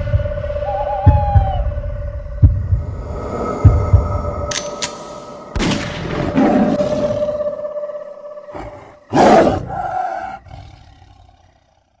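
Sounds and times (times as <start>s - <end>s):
tiger roaring: 8.5s - 12.0s.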